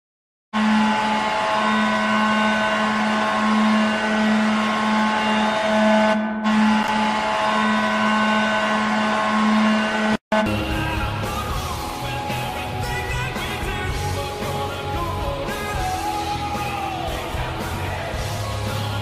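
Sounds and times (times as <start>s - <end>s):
hockey goal horn blast: 0.6s - 10.7s.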